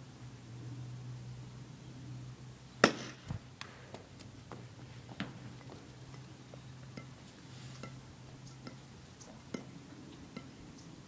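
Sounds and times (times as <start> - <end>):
bat hitting ball: 2.8 - 4.0.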